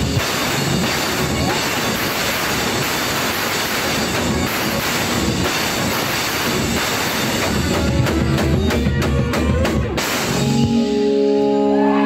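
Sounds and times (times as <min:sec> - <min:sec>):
drums: 0:00.0 - 0:12.0
loud live band music: 0:00.0 - 0:12.0.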